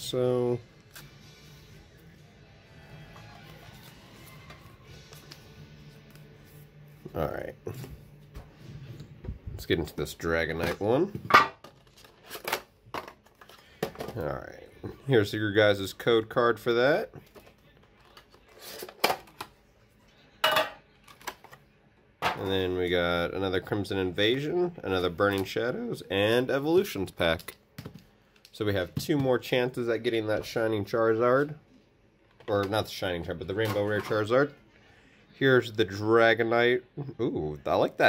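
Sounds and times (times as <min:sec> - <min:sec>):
faint background music: 0:00.0 - 0:38.0.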